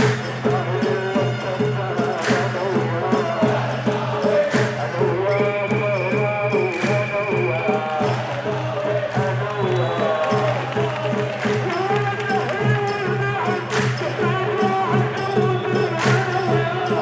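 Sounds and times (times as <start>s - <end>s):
crowd chanting: 0.0s - 17.0s.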